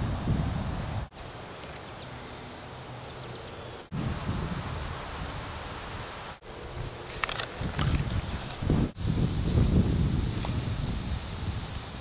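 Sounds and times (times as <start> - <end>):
wind rumble on microphone: 0.0 - 1.1, 3.9 - 6.0, 6.6 - 12.0
insects droning: 0.0 - 12.0.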